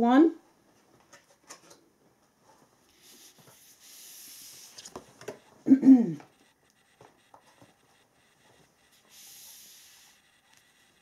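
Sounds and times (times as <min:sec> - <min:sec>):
soft rustling slide on cloth: 0:02.9 - 0:05.0
person humming: 0:05.7 - 0:06.3.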